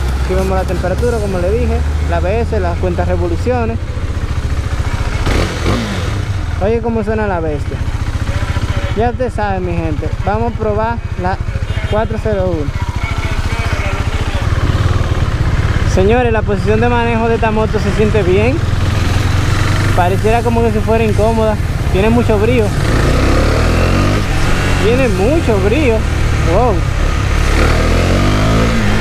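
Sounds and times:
motorcycle engine pulling away: 0.0s - 6.7s, 12.8s - 29.0s.

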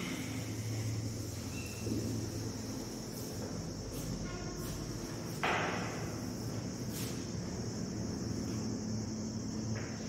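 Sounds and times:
constant hiss: 0.0s - 10.0s.

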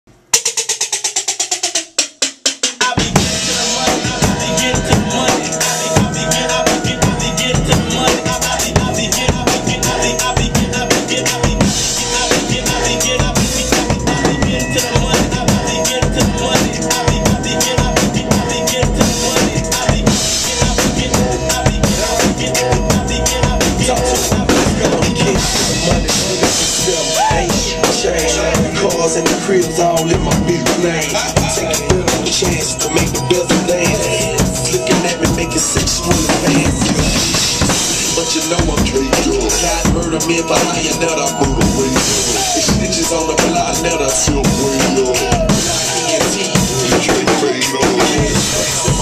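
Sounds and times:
acoustic drum kit: 0.1s - 49.0s
hip-hop backing track: 0.3s - 49.0s.

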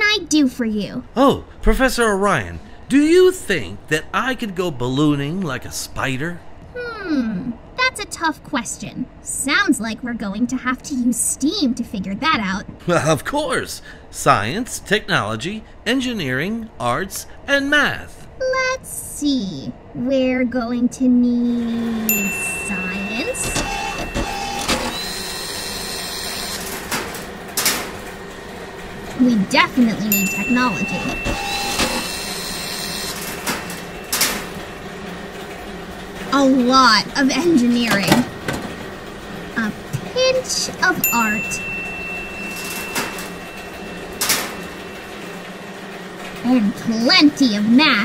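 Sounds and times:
machine low hum: 0.0s - 48.0s
whirring motor: 21.4s - 38.4s.

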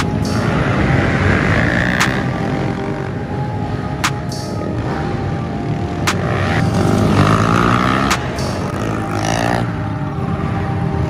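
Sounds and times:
pit bike engines revving: 0.0s - 11.0s.

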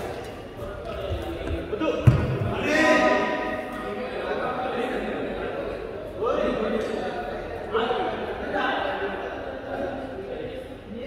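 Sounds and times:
heavy thud on court floor: 2.0s - 2.5s.

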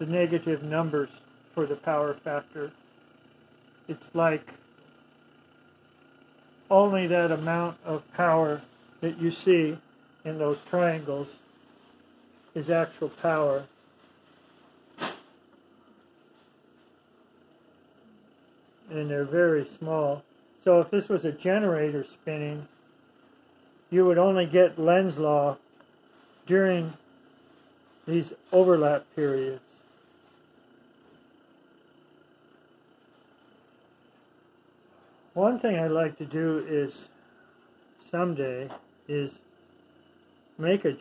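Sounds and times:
faint electrical hum: 0.0s - 41.0s.

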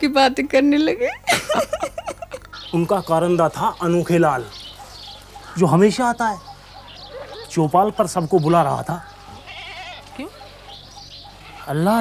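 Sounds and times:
goat bleating: 9.3s - 10.3s, 11.4s - 12.0s.

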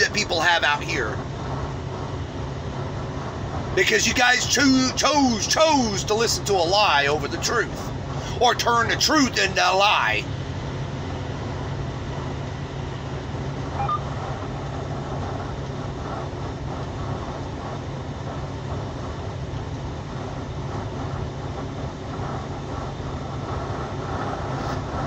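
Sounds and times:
vehicle engine and road noise: 0.0s - 25.0s.

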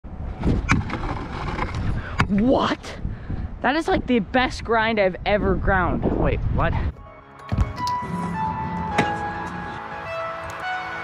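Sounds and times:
scooter grinding along ledge: 0.4s - 2.2s
scooter wheels rolling on concrete: 0.4s - 2.5s.

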